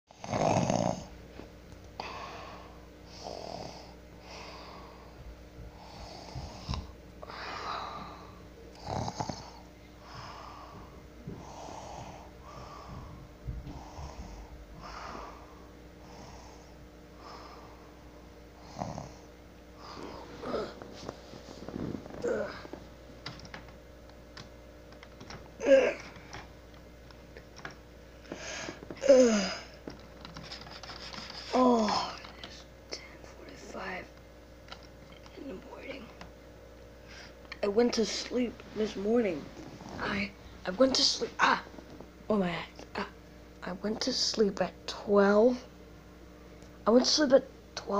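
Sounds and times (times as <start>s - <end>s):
person breathing raspily: 2.0s - 8.4s, 9.2s - 18.0s, 28.2s - 29.8s
sleepy person's utterance: 29.0s - 29.8s.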